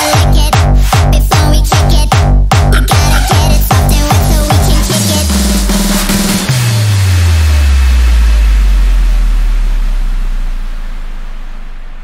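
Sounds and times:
deep sub-bass boom: 0:00.2 - 0:12.0.

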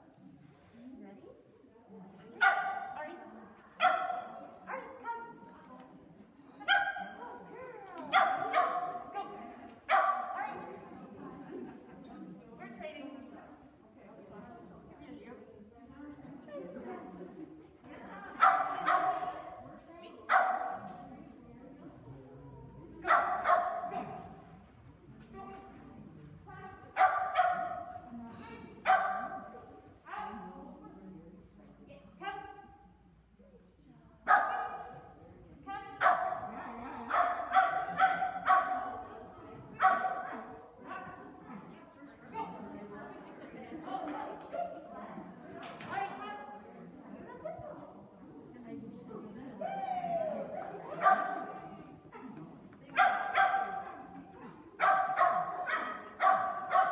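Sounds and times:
dog barking: 0:02.4 - 0:03.0, 0:03.8 - 0:04.8, 0:06.7 - 0:07.2, 0:08.1 - 0:09.0, 0:09.9 - 0:10.4, 0:18.4 - 0:19.2, 0:20.3 - 0:20.8, 0:23.0 - 0:23.9, 0:27.0 - 0:27.9, 0:28.8 - 0:29.5, 0:34.3 - 0:34.9, 0:36.0 - 0:38.9, 0:39.8 - 0:40.4, 0:53.0 - 0:54.0, 0:54.8 - 0:56.9
dog barking with echo: 0:23.1 - 0:23.9, 0:27.0 - 0:27.8, 0:53.0 - 0:54.0, 0:54.8 - 0:56.9.

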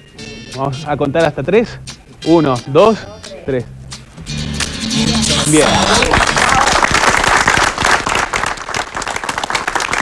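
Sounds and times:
background music: 0:00.0 - 0:07.0
people clapping: 0:05.1 - 0:10.0.

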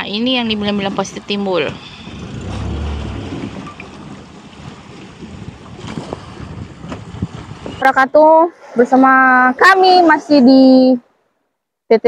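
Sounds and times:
open water washing: 0:00.0 - 0:10.9
wind buffeting microphone: 0:00.0 - 0:11.0.

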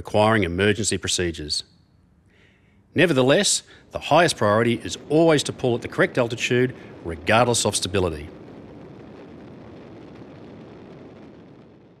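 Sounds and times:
rushing wind of freefall: 0:02.9 - 0:12.0.

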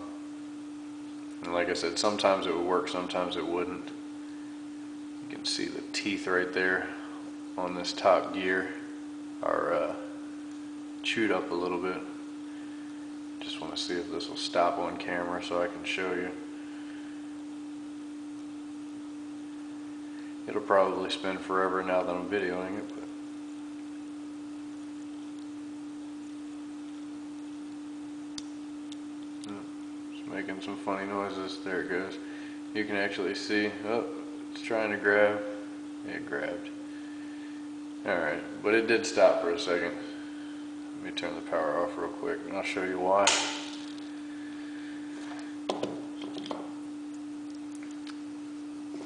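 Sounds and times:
steady electrical hum: 0:00.0 - 0:49.0.

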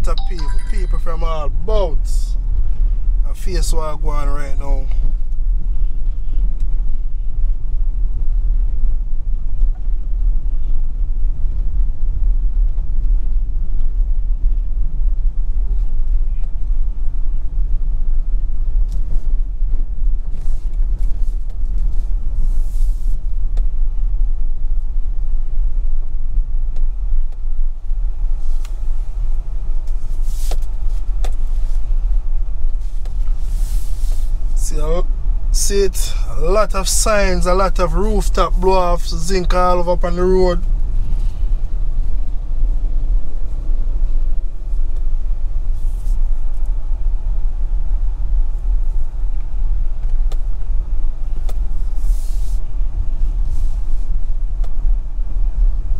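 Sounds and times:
vehicle rumble on rough road: 0:01.1 - 0:55.9.

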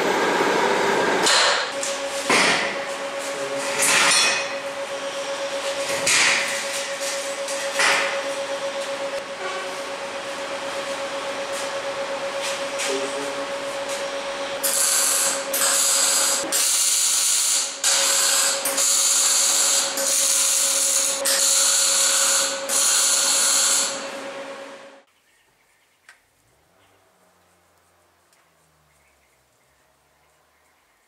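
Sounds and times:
welding crackle bursts: 0:14.6 - 0:24.0.

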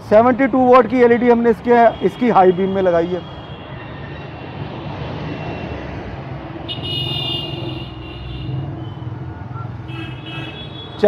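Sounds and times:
roadside traffic noise: 0:00.0 - 0:11.0
vehicle horn: 0:06.7 - 0:09.0, 0:09.8 - 0:11.0.

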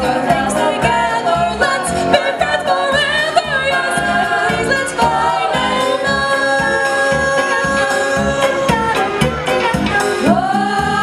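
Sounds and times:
young singers in harmony: 0:00.0 - 0:11.0.

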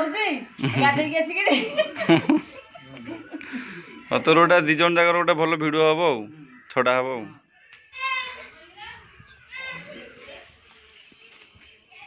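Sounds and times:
children calling: 0:01.6 - 0:12.0.

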